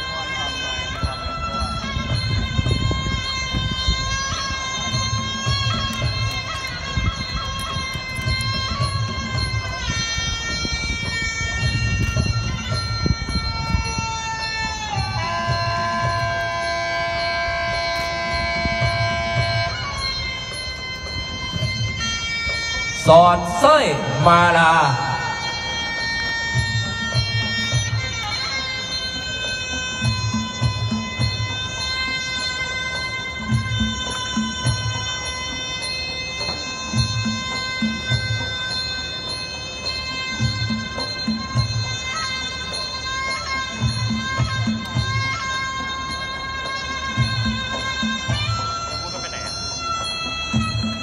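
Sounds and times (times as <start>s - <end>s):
high pipe note: 23.0s - 26.4s.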